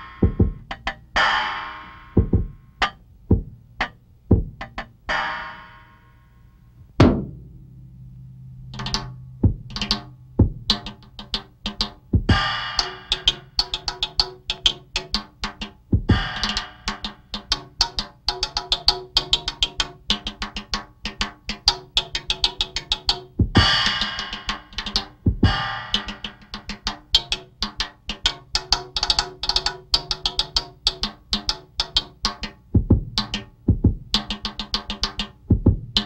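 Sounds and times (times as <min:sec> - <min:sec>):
drum solo: 0:00.0 - 0:05.9, 0:07.0 - 0:36.0.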